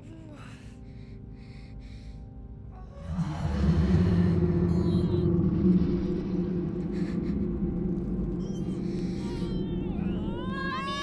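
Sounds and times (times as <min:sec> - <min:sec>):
low rumbling horror drone: 0:02.7 - 0:11.0.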